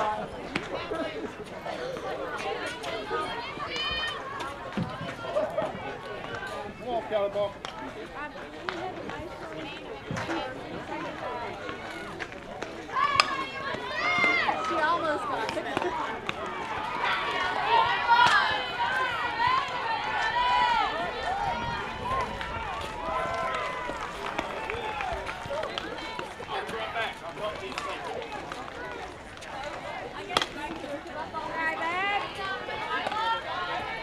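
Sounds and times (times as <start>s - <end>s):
people shouting and yelling: 0.0s - 34.0s.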